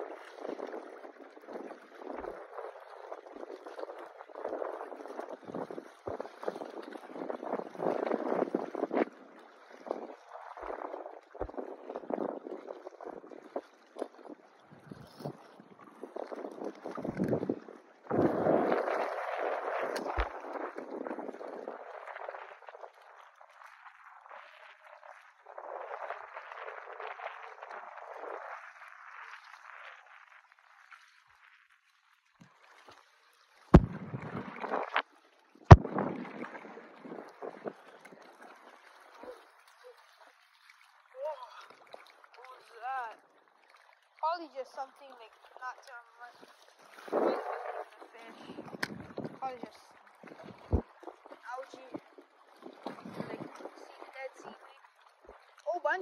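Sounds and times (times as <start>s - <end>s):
water sloshing and lapping: 0.0s - 56.0s.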